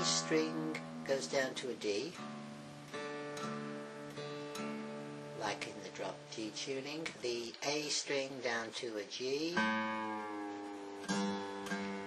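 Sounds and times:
acoustic guitar picking: 0.0 - 12.0.

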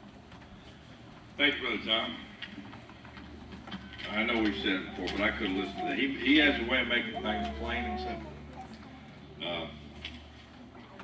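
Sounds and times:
faint clicks and rustles of papers: 0.0 - 6.0, 9.8 - 11.0
low hum of sound system: 0.0 - 11.0.

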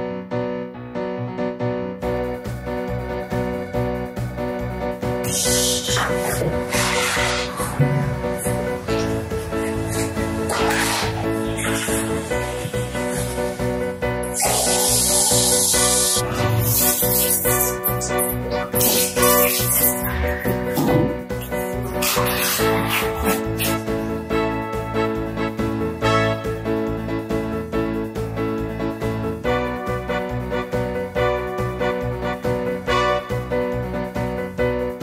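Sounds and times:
background music: 0.0 - 35.0
deep bass: 2.0 - 32.8
piano playing notes: 5.2 - 23.8.

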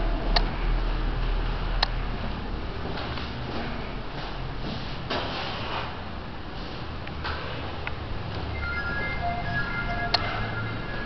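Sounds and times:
electronic jingle: 8.4 - 11.0.

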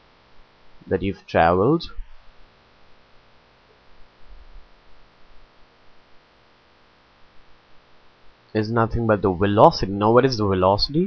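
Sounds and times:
faint electrical hum with hiss: 0.0 - 11.0.

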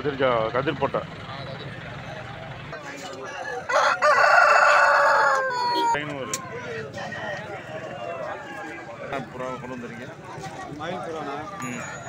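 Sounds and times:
rooster crowing: 3.2 - 6.0.

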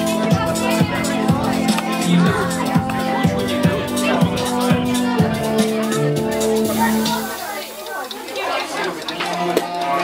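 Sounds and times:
background music with steady beat: 0.0 - 10.0
people chattering: 0.0 - 10.0.

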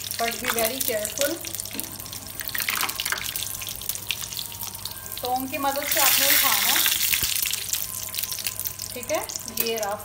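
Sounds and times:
food frying in hot oil: 0.0 - 10.0.

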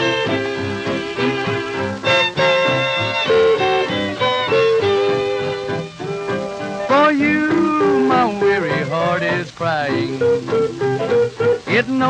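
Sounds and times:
fiddle sliding notes: 0.0 - 12.0
western swing string band: 0.0 - 12.0.

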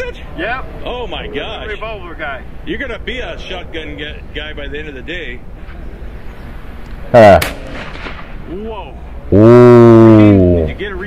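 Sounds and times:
shotgun shot: 7.3 - 8.6.

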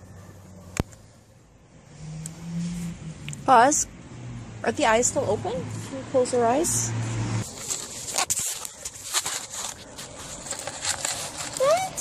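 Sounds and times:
paper rustling: 7.5 - 12.0.

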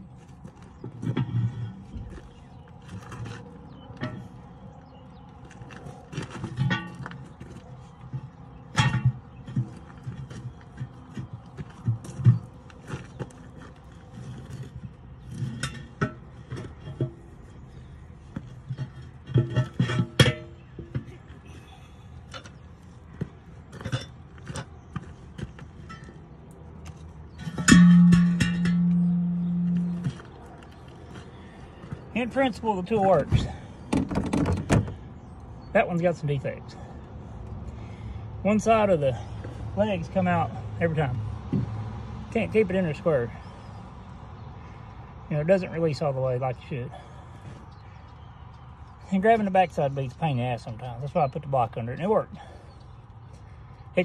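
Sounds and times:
steel bar clanking on tire changer: 0.6 - 5.0, 6.1 - 12.5, 14.2 - 35.3
loud steady tone: 27.6 - 30.3.

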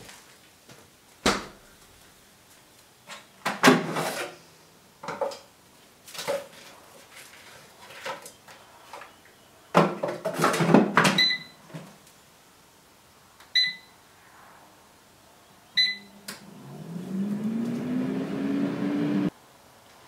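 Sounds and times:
electronic button beeps: 15.8 - 16.1
kitchen appliance motor running: 16.4 - 19.3.

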